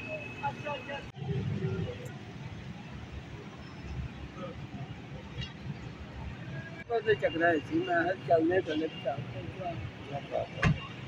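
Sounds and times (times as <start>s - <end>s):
low traffic rumble: 0.0s - 11.0s.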